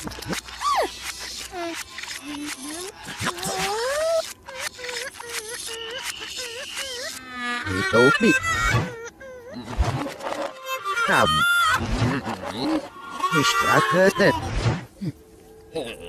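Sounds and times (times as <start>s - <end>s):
cartoon character vocalizations: 0.6s - 14.5s.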